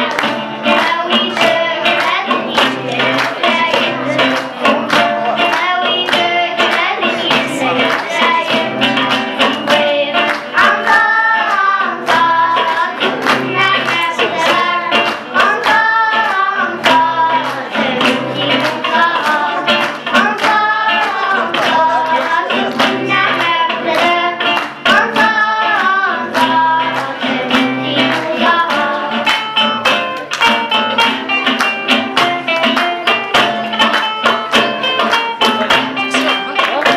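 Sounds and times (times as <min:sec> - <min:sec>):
girls singing: 0:00.0 - 0:29.7
acoustic guitars strumming: 0:00.0 - 0:36.9.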